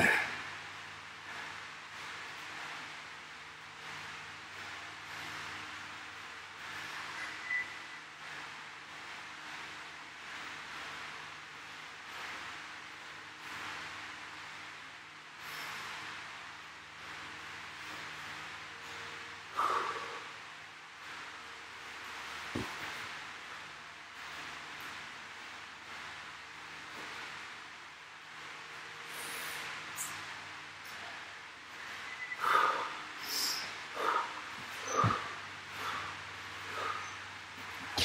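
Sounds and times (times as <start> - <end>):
faint room hum: 0.0 - 38.0
man breathing hard: 19.5 - 20.4, 32.4 - 37.3.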